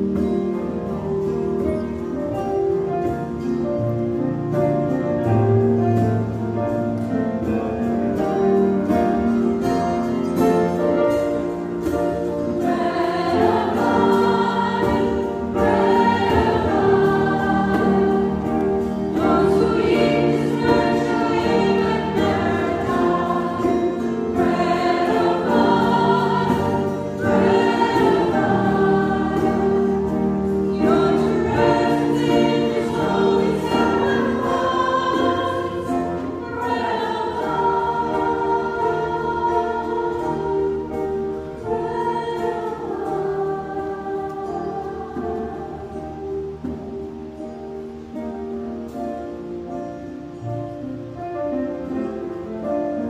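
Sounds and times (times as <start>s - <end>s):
keyboard chords: 0.0s - 53.0s
youth choir singing a hymn: 8.2s - 47.1s.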